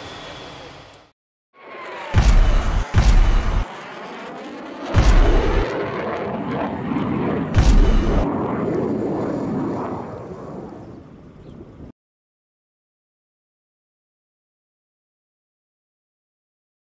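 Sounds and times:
deep cinematic boom hits: 2.2s - 3.7s, 5.0s - 5.7s, 7.6s - 8.2s.

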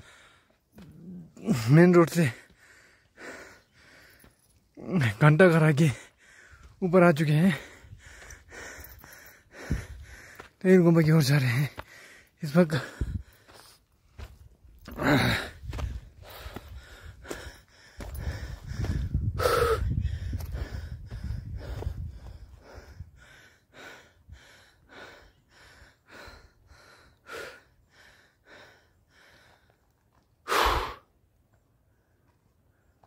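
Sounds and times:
person breathing hard: 0.0s - 1.7s, 2.3s - 4.5s, 5.9s - 6.8s, 7.5s - 10.6s, 11.6s - 29.8s, 30.4s - 31.2s.

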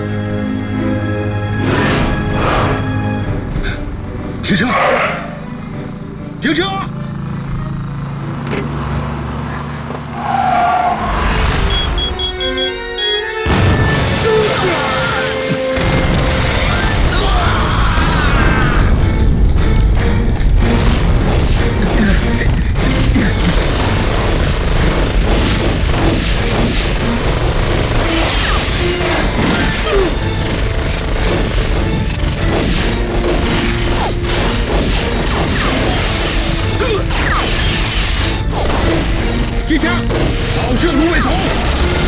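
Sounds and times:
dramatic music: 0.0s - 42.0s
loud explosion: 13.4s - 14.9s.

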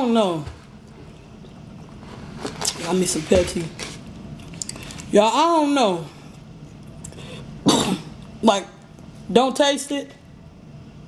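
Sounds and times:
man coughing: 7.6s - 8.2s.

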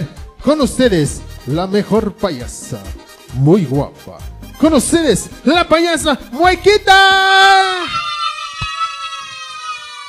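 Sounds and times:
person whooping: 7.0s - 10.0s.

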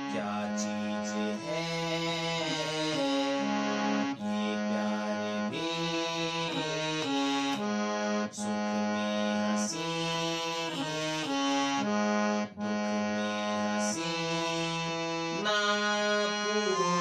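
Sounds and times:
harmonium playing slow melody: 0.0s - 17.0s.

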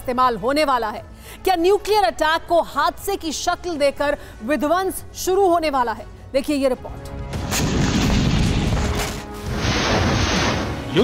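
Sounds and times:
rumbling explosion: 7.4s - 11.0s.

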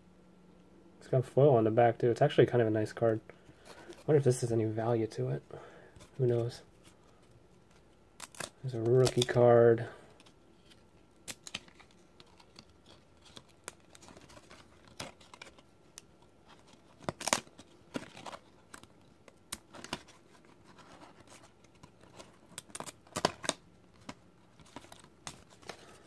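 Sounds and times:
trading cards clicking and rustling: 7.7s - 9.4s.

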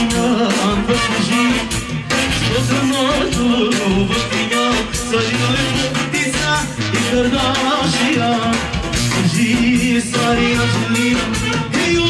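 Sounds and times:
live band music: 0.0s - 12.0s
man singing into a microphone: 0.0s - 12.0s.

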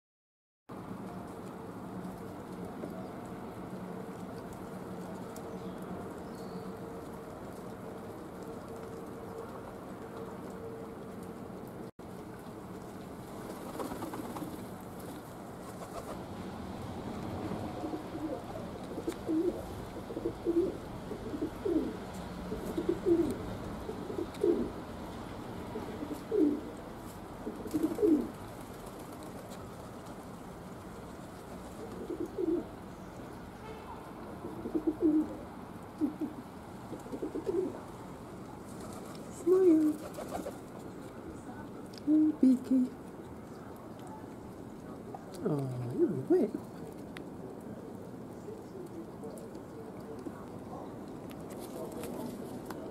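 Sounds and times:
pigeon cooing: 17.6s - 24.8s, 25.7s - 26.7s, 27.4s - 28.4s, 31.8s - 32.7s, 34.4s - 37.9s.

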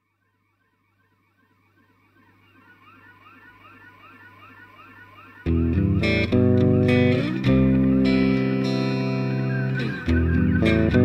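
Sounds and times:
warbling siren-like tones: 0.0s - 11.0s.

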